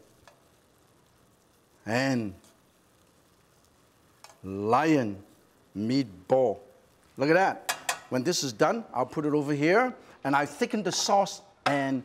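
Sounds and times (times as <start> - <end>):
meatballs sizzling in a pan: 0.0 - 12.0.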